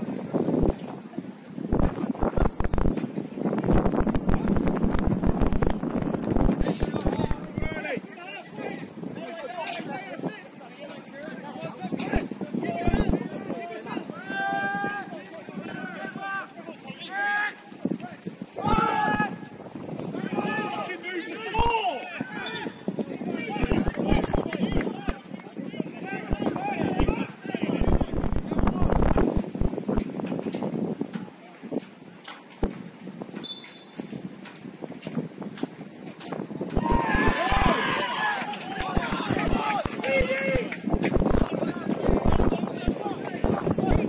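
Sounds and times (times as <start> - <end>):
faint high whistle: 33.4 - 34.0.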